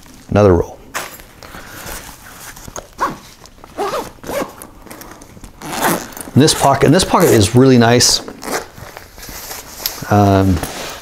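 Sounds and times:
fabric rustling: 0:01.2 - 0:11.0
backpack zipper zipping: 0:03.0 - 0:07.6, 0:08.2 - 0:08.8.

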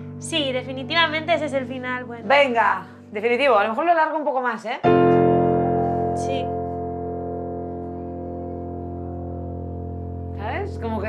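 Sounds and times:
keyboard holding a chord: 0:00.0 - 0:03.6, 0:04.8 - 0:11.0.

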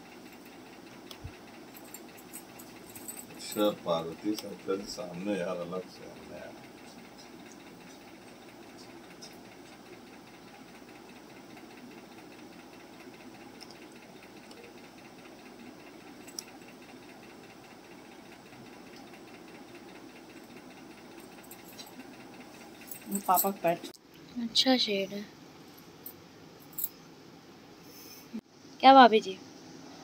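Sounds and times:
machine hum with hiss: 0:00.0 - 0:24.6.

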